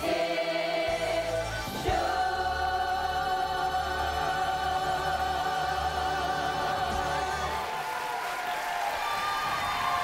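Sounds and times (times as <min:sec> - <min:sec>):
choir singing a held chord: 0:00.0 - 0:07.7.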